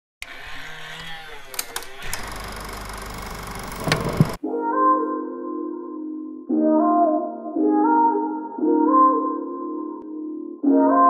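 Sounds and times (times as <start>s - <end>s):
projector mechanical clatter: 1.6s - 4.4s.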